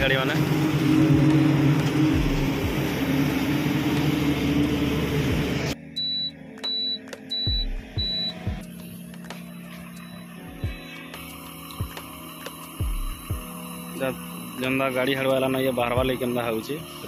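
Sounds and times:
vehicle engine and road noise: 0:00.0 - 0:05.8
faint background music: 0:05.7 - 0:17.0
short high beeps: 0:06.0 - 0:08.4.

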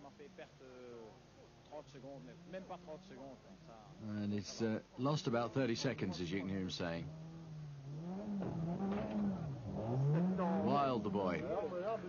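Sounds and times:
car engine revving: 0:06.8 - 0:12.0.

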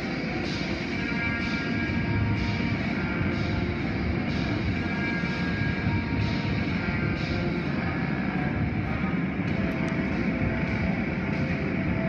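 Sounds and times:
car wash equipment roaring: 0:00.0 - 0:12.0.

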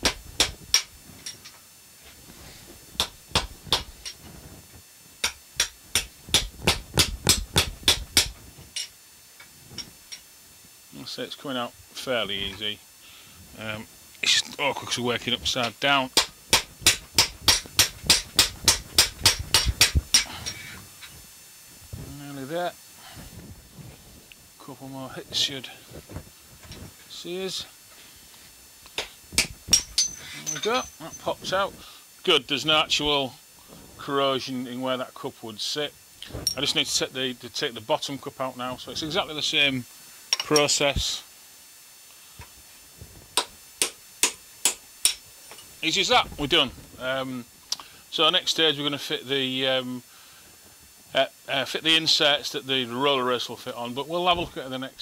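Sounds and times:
hammer striking metal: 0:16.2 - 0:20.3.

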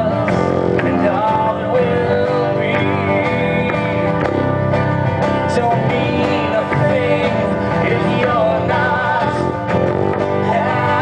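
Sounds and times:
person singing: 0:00.0 - 0:04.2, 0:05.5 - 0:11.0
acoustic guitar strumming: 0:00.0 - 0:11.0.

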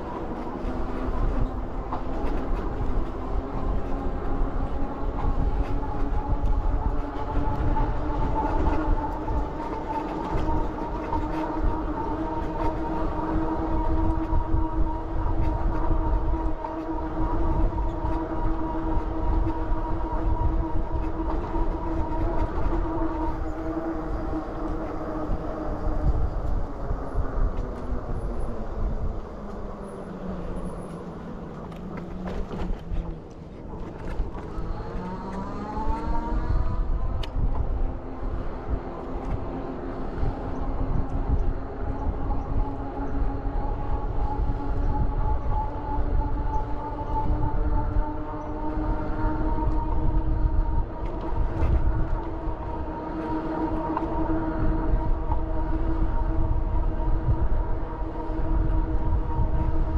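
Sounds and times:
wind rumbling on microphone: 0:00.0 - 0:59.9
electric bike motor whining: 0:43.2 - 0:59.9.

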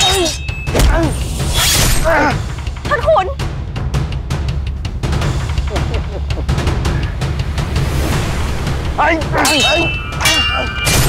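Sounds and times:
sword blades clashing: 0:00.0 - 0:02.2, 0:09.4 - 0:11.0.

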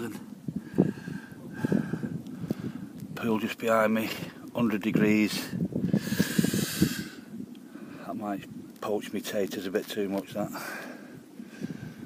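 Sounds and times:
man exhaling breathily: 0:00.6 - 0:02.9, 0:05.9 - 0:08.1.

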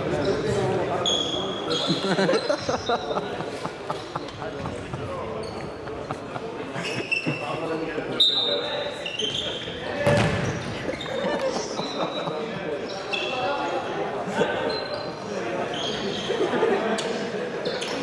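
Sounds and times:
sneakers squeaking on wooden floor: 0:00.0 - 0:03.2, 0:04.1 - 0:06.0, 0:08.2 - 0:13.6, 0:14.6 - 0:16.3
ball kicked and bouncing: 0:10.0 - 0:10.6.

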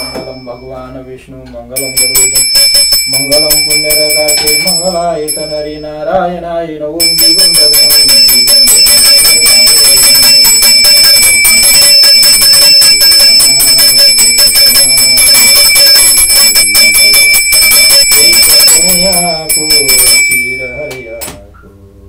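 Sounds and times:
small hand bell ringing rapidly: 0:01.8 - 0:06.0, 0:07.0 - 0:21.3
man chanting: 0:03.1 - 0:10.4, 0:13.2 - 0:21.8.

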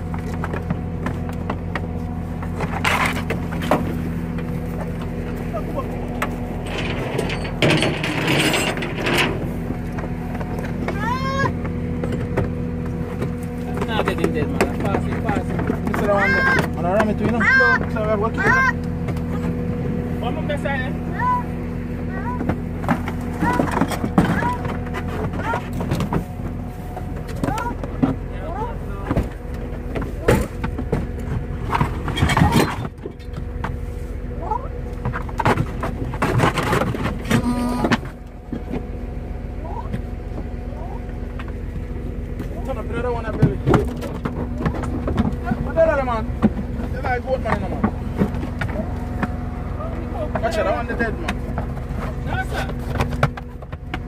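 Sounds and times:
low mechanical hum: 0:00.0 - 0:54.0
goat bleat: 0:37.4 - 0:38.0.

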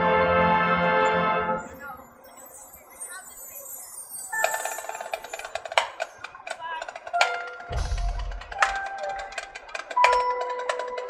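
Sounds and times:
mallet percussion playing: 0:02.3 - 0:11.0.

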